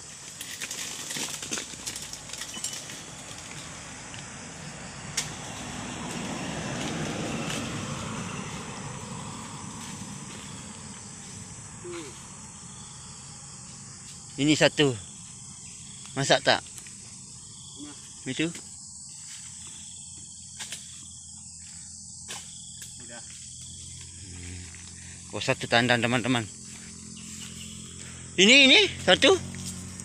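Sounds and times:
blade crackling against palm fronds: 0.0 - 4.2, 5.1 - 10.5
car passing: 2.7 - 14.0, 23.7 - 30.0.

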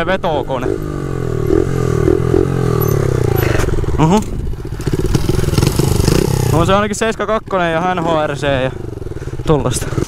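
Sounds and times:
mini bike engine running: 0.6 - 6.9.

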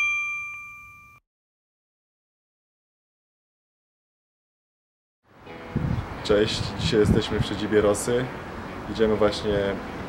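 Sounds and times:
bright metallic ding: 0.0 - 1.2.

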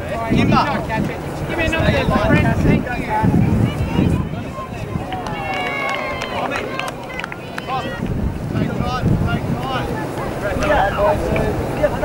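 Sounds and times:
distant voices calling: 0.0 - 12.0
wind buffeting microphone: 0.0 - 12.0.

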